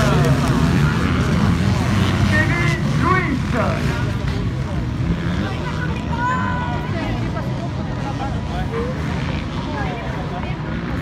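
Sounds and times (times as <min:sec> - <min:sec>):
motocross bike engines revving: 0:00.0 - 0:11.0.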